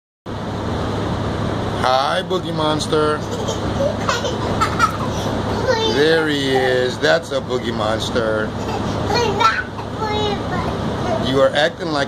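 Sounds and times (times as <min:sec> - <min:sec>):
bus engine hum: 0:00.3 - 0:11.8
road noise rush: 0:00.3 - 0:12.0.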